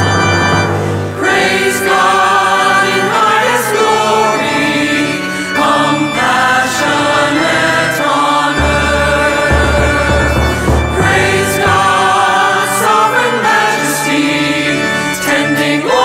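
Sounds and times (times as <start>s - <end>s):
slow choral singing: 1.1s - 16.0s
deep bass note: 8.6s - 12.1s.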